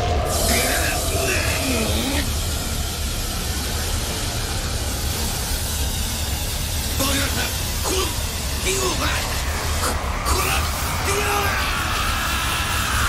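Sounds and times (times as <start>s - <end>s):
strained vocal sound: 0.0s - 2.3s
steady hiss: 0.0s - 13.0s.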